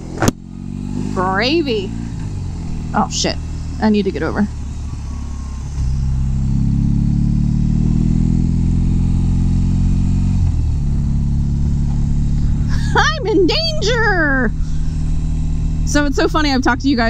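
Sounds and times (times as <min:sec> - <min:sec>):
motorcycle engine accelerating: 0:00.0 - 0:17.0.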